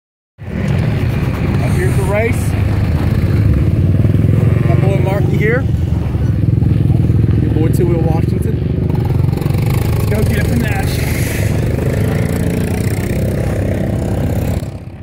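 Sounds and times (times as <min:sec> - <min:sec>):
dirt bike engines idling: 0:00.6 - 0:15.0
voices: 0:01.5 - 0:02.6, 0:04.2 - 0:14.8.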